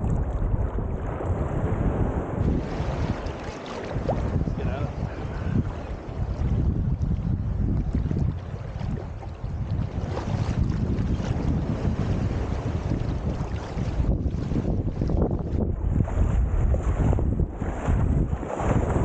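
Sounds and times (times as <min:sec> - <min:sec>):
seawater sloshing and lapping: 0:00.0 - 0:19.0
small waves washing in: 0:00.0 - 0:19.0
wind buffeting microphone: 0:00.0 - 0:19.0.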